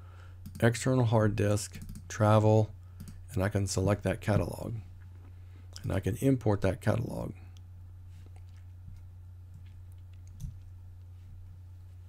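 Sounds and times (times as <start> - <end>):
steady low hum: 0.0 - 12.0
computer mouse click: 1.8 - 2.1.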